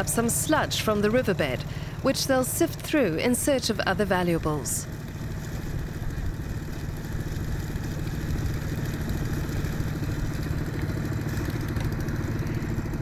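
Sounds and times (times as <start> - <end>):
small engine idling: 0.0 - 13.0.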